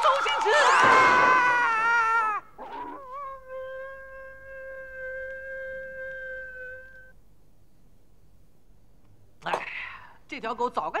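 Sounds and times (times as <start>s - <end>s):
man screaming: 0.4s - 2.5s.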